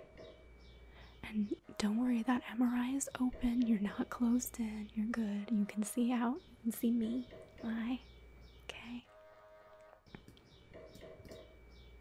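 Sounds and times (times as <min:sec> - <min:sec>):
faint steady tone: 0:00.0 - 0:12.0.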